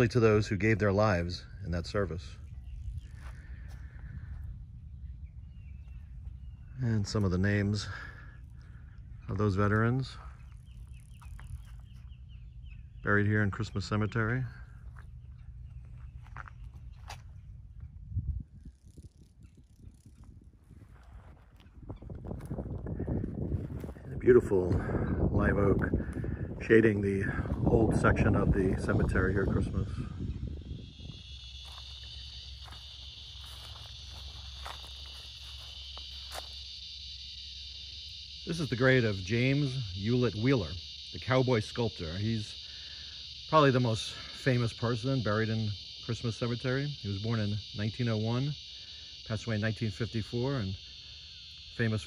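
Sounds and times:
low steady rumble: 0.0s - 41.2s
high insect chorus: 0.0s - 52.0s
bird chirping: 1.1s - 17.9s
footsteps through grass and dry leaves: 2.5s - 7.2s, 9.7s - 12.6s, 14.6s - 18.1s, 20.2s - 24.5s, 30.9s - 37.2s.

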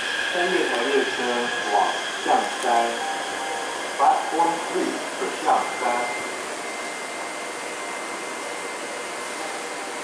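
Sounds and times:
running hiss: 0.0s - 6.8s
steady high whine: 0.0s - 10.0s
train braking to a stop: 0.0s - 10.0s.

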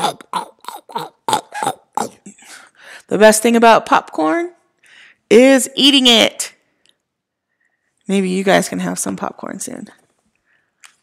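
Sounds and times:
woman making mouth noises: 0.0s - 2.6s.

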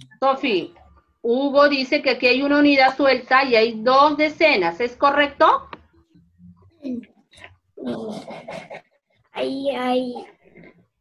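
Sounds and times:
muffled child's voice: 9.4s - 10.4s.

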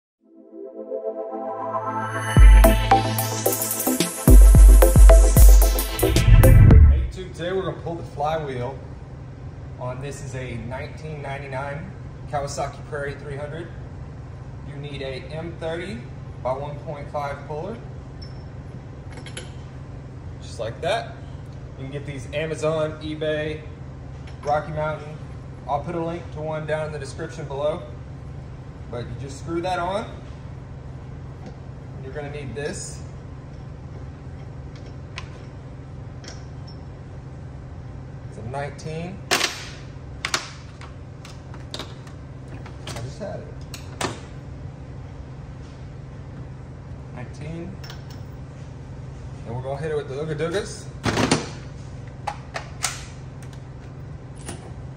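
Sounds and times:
low background hum: 6.3s - 54.9s.

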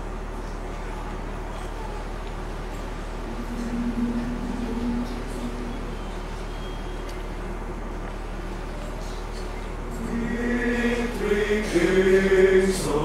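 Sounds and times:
electrical mains hum: 0.0s - 13.0s
held low note: 2.0s - 8.7s.

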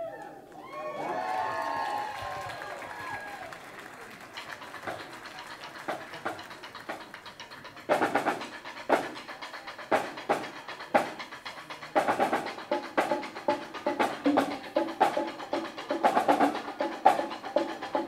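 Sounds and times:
guests cheering and whooping: 0.0s - 4.1s
sharp drum strikes: 5.9s - 18.0s.

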